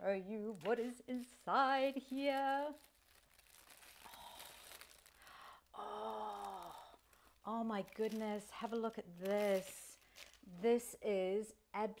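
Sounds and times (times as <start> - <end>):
tissue paper crinkling: 0.3 - 10.8.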